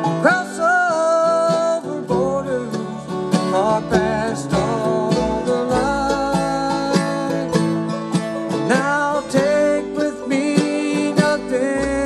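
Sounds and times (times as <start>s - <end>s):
acoustic guitar: 0.0s - 12.0s
bluegrass band playing: 0.0s - 12.0s
sliding lead string line: 0.0s - 12.0s.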